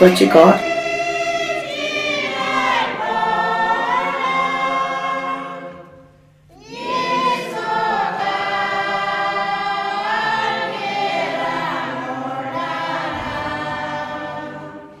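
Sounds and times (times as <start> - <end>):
choir singing long held notes: 0.0 - 15.0.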